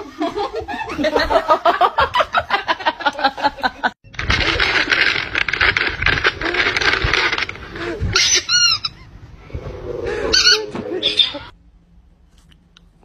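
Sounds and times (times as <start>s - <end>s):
high-pitched squeaky calls: 8.1s - 9.1s.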